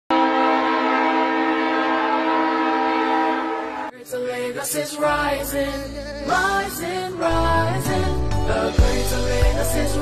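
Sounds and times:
train horn blast: 0:00.1 - 0:03.9.

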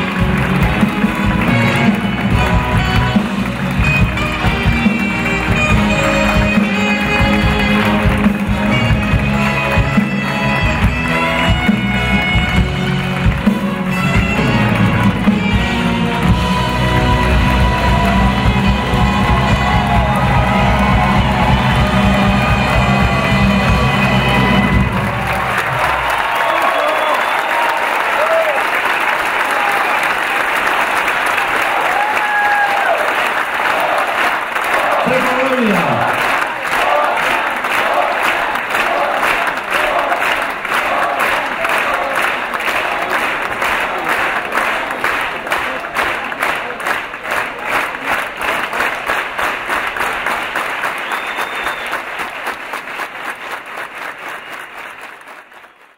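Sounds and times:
orchestral music: 0:00.0 - 0:26.6
audience applauding and cheering: 0:00.0 - 0:55.9
rhythmic clapping in unison: 0:00.0 - 0:55.9
shouts and whistles: 0:26.3 - 0:27.8, 0:51.0 - 0:52.0.

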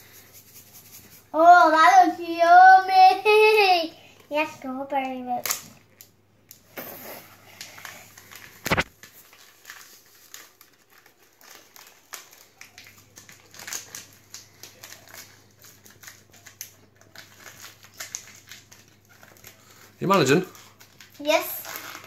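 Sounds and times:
paper sachet crinkling: 0:07.5 - 0:22.0.

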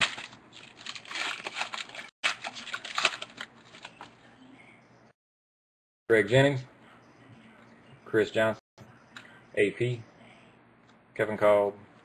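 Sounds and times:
foil wrapper tearing and crinkling: 0:00.0 - 0:04.1.

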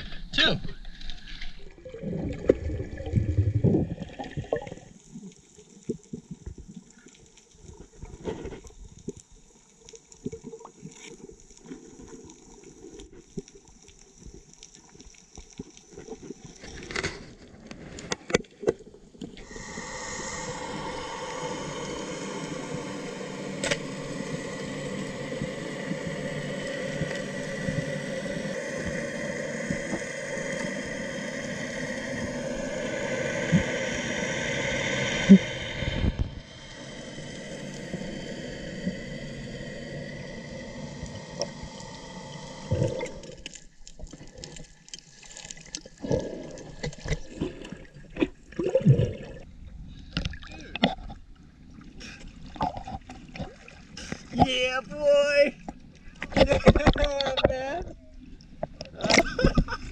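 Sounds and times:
boat engine drone underwater: 0:00.0 - 0:59.9
underwater water noise: 0:00.0 - 0:59.9.

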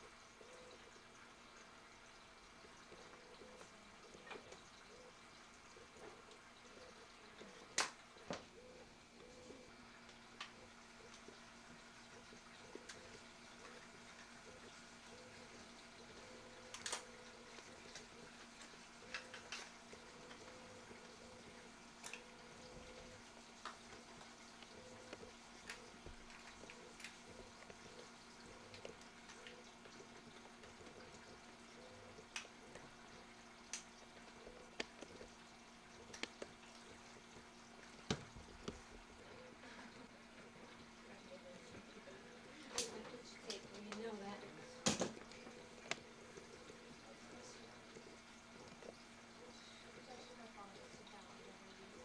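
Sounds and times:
faint clicks and ticks: 0:00.0 - 0:52.0.

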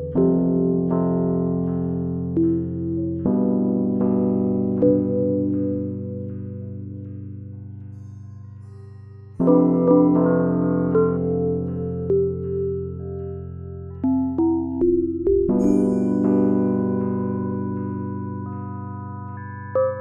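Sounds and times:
slow electric piano chords: 0:00.0 - 0:07.8, 0:09.4 - 0:20.0.

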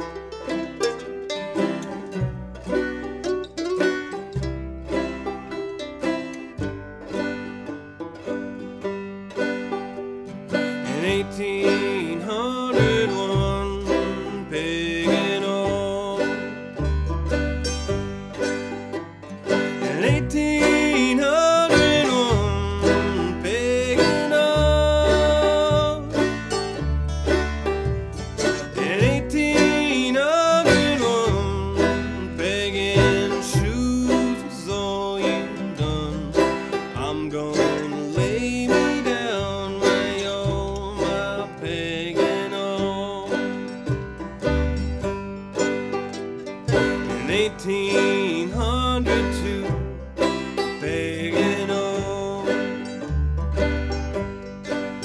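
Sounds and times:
acoustic guitar: 0:00.0 - 0:55.0
banjo lead: 0:00.0 - 0:55.0
mandolin: 0:00.0 - 0:55.0
upright bass plucking: 0:00.0 - 0:55.0.

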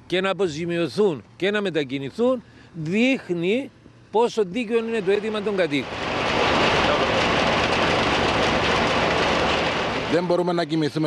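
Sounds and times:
steady machinery noise: 0:04.2 - 0:11.0.

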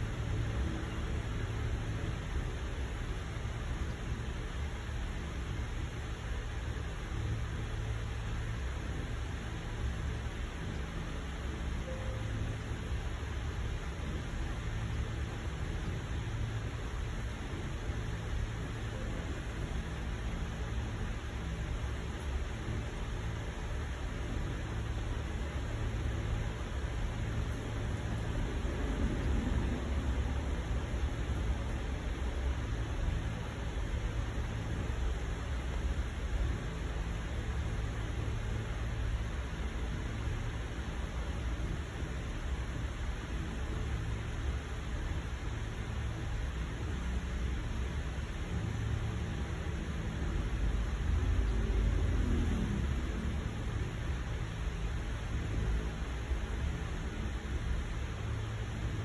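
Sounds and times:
low rumble with faint hiss: 0:00.0 - 0:59.0.

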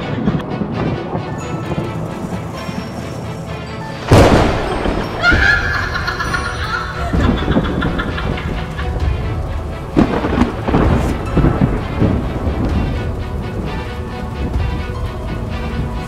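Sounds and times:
dramatic soundtrack music: 0:00.0 - 0:16.0
heavy rumbling noise: 0:00.0 - 0:16.0
sharp hit: 0:04.1 - 0:06.2.

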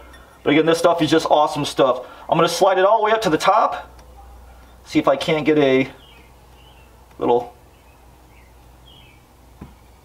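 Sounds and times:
faint room hum: 0:00.0 - 0:10.0
soft tap: 0:09.6 - 0:09.8.

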